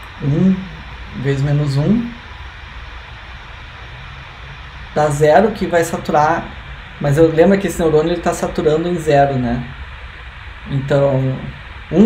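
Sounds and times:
room tone hum and hiss: 0:00.0 - 0:12.0.

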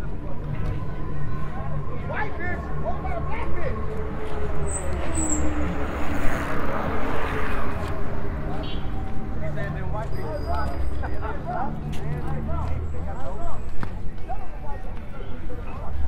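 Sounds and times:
voices of passers-by: 0:00.0 - 0:16.0
vehicle passing: 0:00.7 - 0:13.7.

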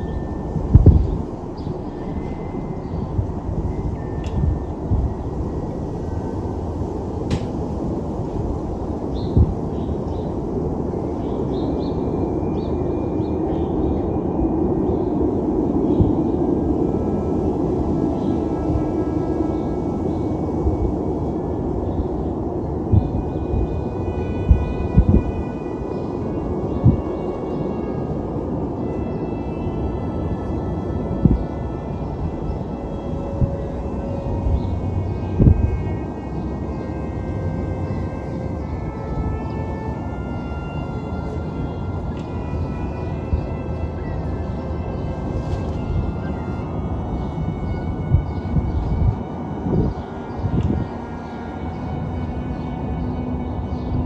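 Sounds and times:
faint sustained high tones: 0:00.0 - 0:54.0
urban background rumble: 0:00.0 - 0:54.0.

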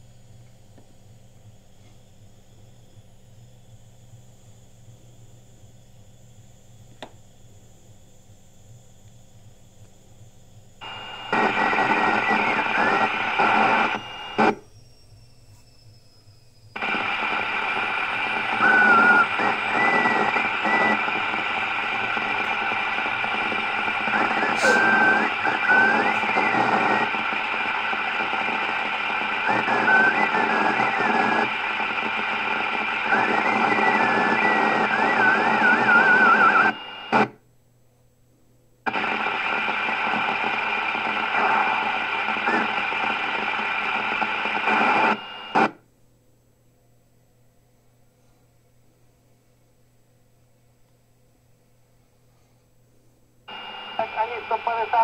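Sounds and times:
radio voices over hiss: 0:10.8 - 0:14.5, 0:16.8 - 0:37.2, 0:38.9 - 0:45.7, 0:53.5 - 0:55.0.

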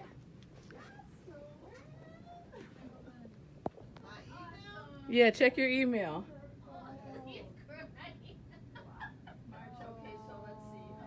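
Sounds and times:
faint wavering voice: 0:09.5 - 0:11.0.

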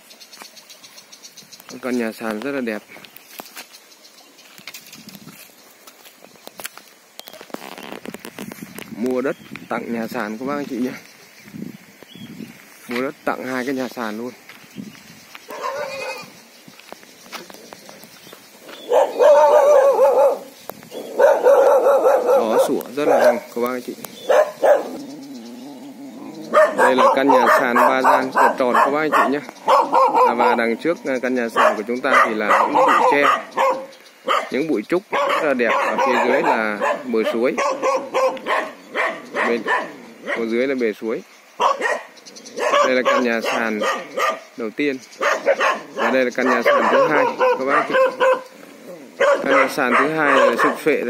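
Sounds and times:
dogs barking howl-like: 0:15.5 - 0:16.3, 0:18.7 - 0:23.5, 0:24.2 - 0:40.5, 0:41.6 - 0:44.5, 0:45.2 - 0:51.0.

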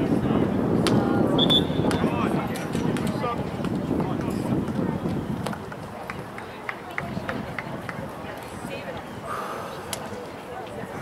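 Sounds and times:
distant voices across a field: 0:00.0 - 0:11.0.

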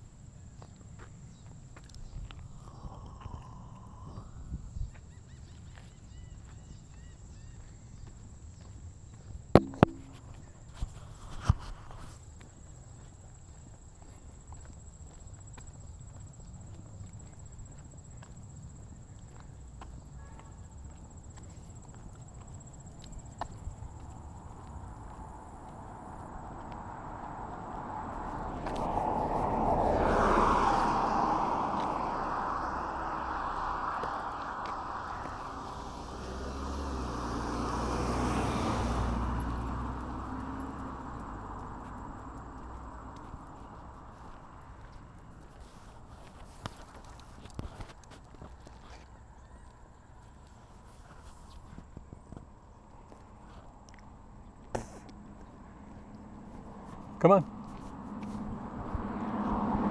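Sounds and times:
distant road noise: 0:00.0 - 0:59.9
vehicles passing close by: 0:05.4 - 0:59.9
deep engine rumble: 0:30.7 - 0:37.6.

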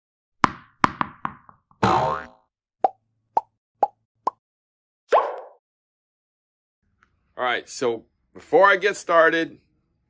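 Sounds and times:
cartoon plops rising in pitch: 0:05.1 - 0:05.6.

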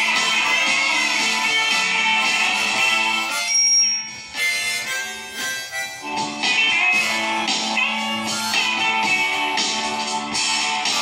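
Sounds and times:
backing track: 0:00.0 - 0:11.0
harmonica melody: 0:00.0 - 0:11.0.

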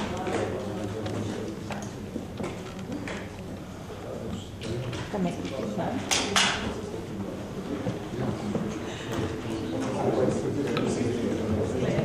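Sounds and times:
murmur of people talking: 0:00.0 - 0:12.0.

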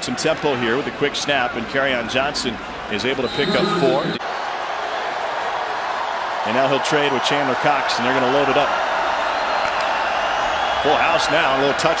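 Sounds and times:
stadium crowd noise: 0:00.0 - 0:12.0
commentator talking: 0:03.1 - 0:04.2.

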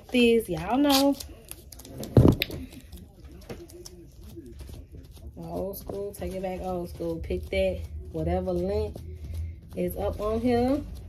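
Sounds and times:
masking tape rustling and tapping: 0:00.0 - 0:11.0.

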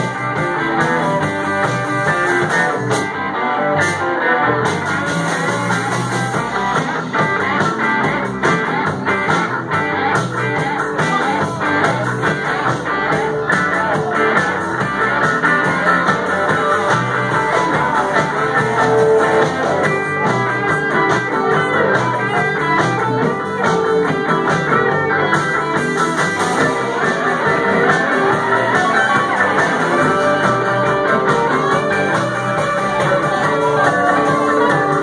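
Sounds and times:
bass guitar: 0:00.0 - 0:35.0
blues harmonica: 0:00.0 - 0:35.0
drum kit: 0:00.0 - 0:35.0
electric guitars: 0:00.0 - 0:35.0.

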